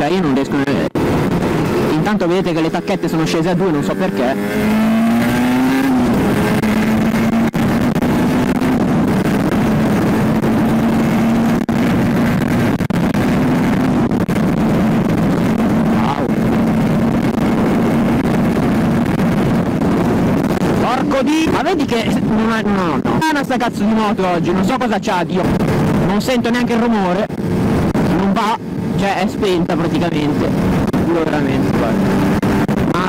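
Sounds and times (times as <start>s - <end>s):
wind on microphone: 0.0s - 23.3s, 24.0s - 33.0s
two-stroke motorcycle engine cruising: 0.0s - 33.0s.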